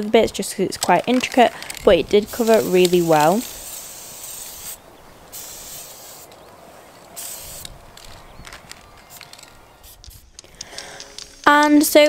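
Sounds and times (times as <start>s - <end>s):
spray paint can hissing: 1.6s - 8.2s, 9.0s - 10.4s, 11.1s - 11.9s
light clicks: 7.6s - 11.3s.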